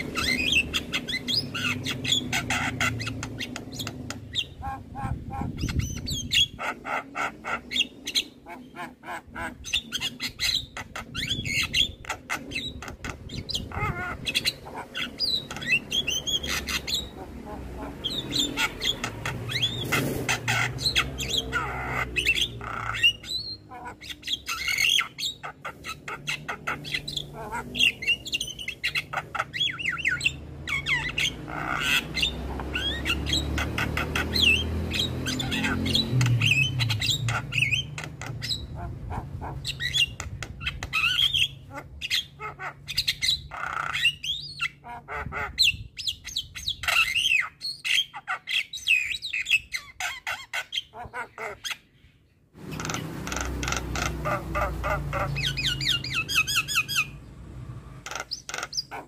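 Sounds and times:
myna bird squawking and whistling: 0.0s - 57.2s, 58.0s - 59.0s.

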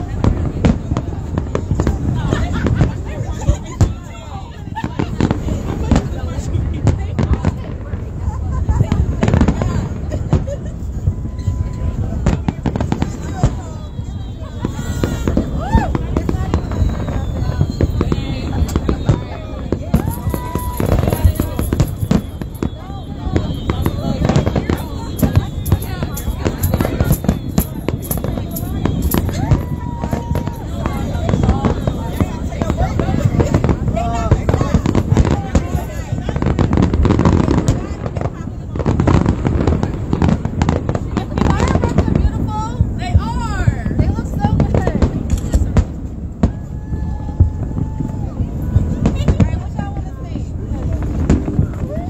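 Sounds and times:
fireworks bangs: 0.0s - 52.0s.

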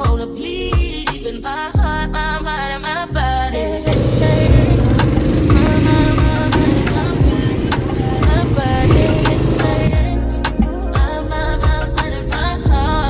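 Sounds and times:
background music with singing: 0.0s - 13.0s
go-kart engine rumbling: 3.9s - 9.9s.

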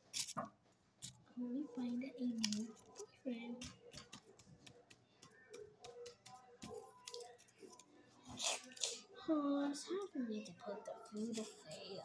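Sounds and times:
paper figures clicking and rustling: 2.2s - 7.9s.

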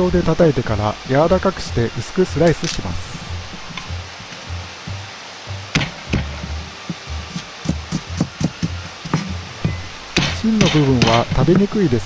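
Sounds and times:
background music with bass line: 1.3s - 12.0s
cleaver chopping on cutting board: 10.2s - 11.7s.

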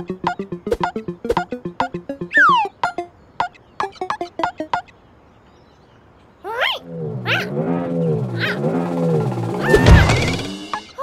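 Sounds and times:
upward sweep: 0.0s - 3.1s, 6.7s - 11.0s
quick plucked ticks: 0.0s - 4.9s
wobbling voice-like comic sound: 6.5s - 8.8s.

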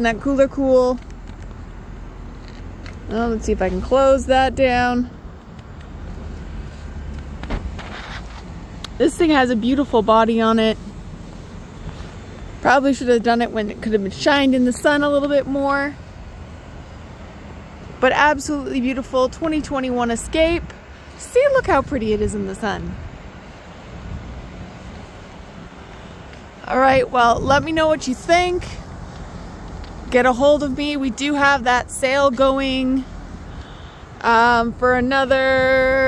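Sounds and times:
outdoor background hiss: 0.0s - 36.0s
wind rumbling on microphone: 0.7s - 36.0s
short thump: 7.3s - 8.5s.

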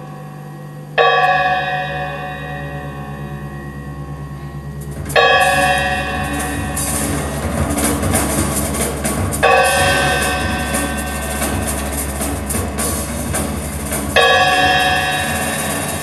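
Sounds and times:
low steady hum: 0.0s - 16.0s
struck metal percussion ringing: 0.0s - 16.0s
clattering percussion: 1.0s - 16.0s.

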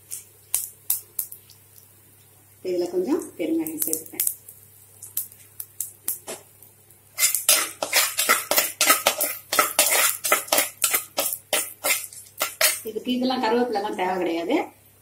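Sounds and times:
spatula clicking and scraping pot: 7.2s - 12.9s.

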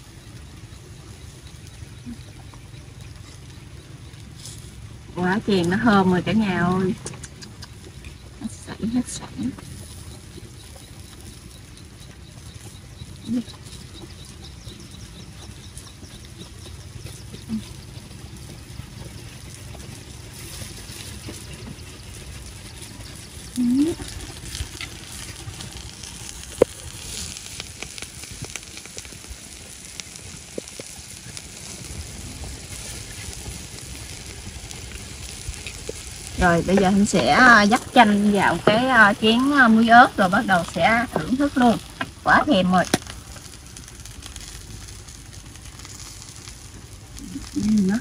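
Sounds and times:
oil sizzling: 0.0s - 48.0s.

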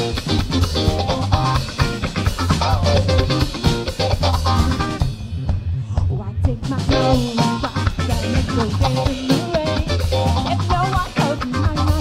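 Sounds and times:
electric guitar: 0.0s - 5.3s, 6.7s - 12.0s
drum kit: 0.0s - 12.0s.

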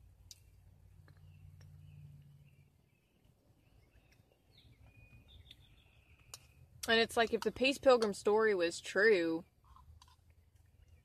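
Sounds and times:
faint high bird chirps: 0.4s - 6.6s.

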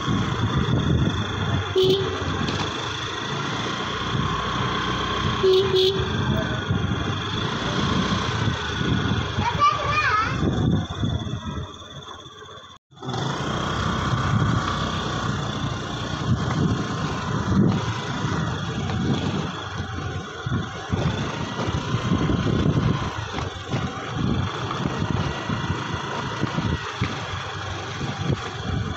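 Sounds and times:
wind rumble on microphone: 0.0s - 3.1s, 3.8s - 12.4s, 13.6s - 28.9s
scooter engine and road noise: 0.0s - 28.9s.

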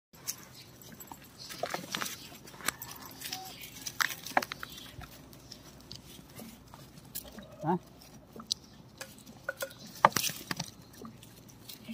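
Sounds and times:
scuffling: 0.2s - 11.9s.

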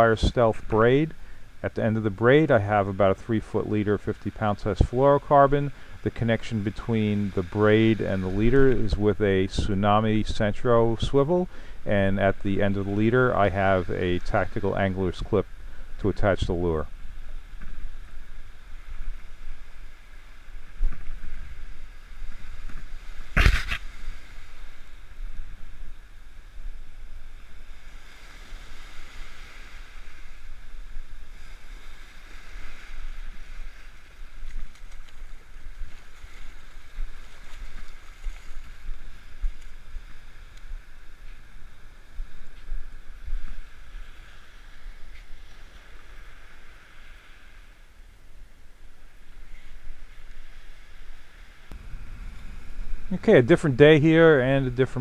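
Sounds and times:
waves washing onto beach: 0.0s - 55.0s
wind rumble on microphone: 0.0s - 55.0s.

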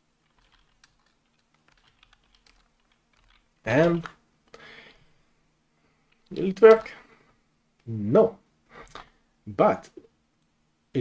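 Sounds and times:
keyboard typing: 0.2s - 4.6s, 6.1s - 7.0s.

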